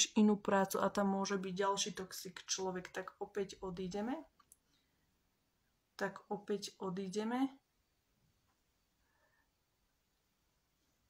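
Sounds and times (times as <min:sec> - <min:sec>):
woman's voice: 0:00.0 - 0:04.3, 0:06.0 - 0:07.6.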